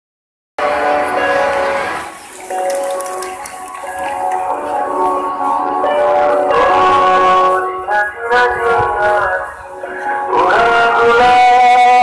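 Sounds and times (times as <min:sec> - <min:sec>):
music with long held chords: 0:00.6 - 0:12.0.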